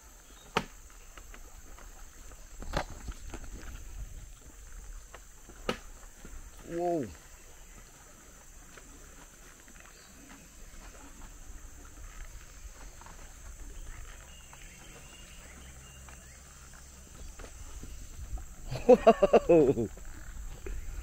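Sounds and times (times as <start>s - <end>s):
faint high hiss: 0.0s - 21.0s.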